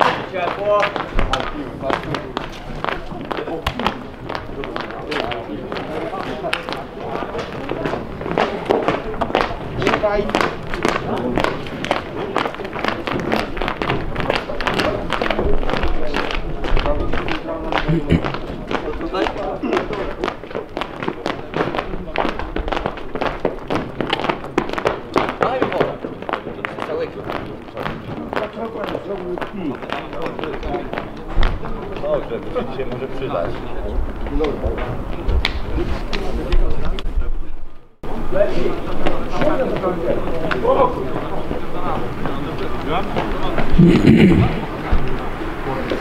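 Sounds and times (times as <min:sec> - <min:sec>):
people talking indistinctly: 0:00.0 - 0:46.0
people calling out: 0:43.7 - 0:45.1.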